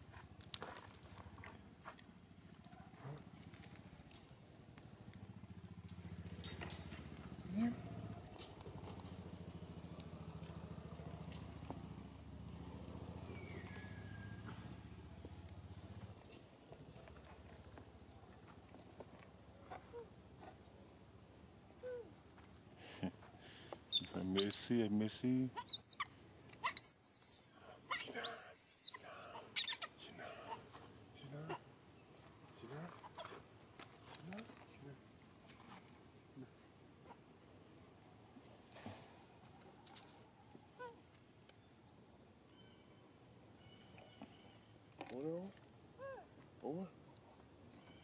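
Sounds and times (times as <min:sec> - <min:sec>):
baby monkey screaming: 0:25.6 - 0:30.0.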